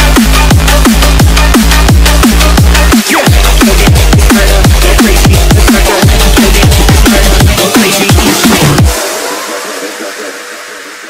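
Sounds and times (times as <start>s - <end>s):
drum and bass track: 0.0s - 11.0s.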